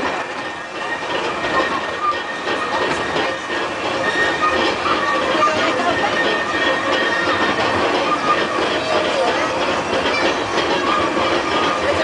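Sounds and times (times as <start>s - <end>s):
train wheels on rails: 0.0s - 12.0s.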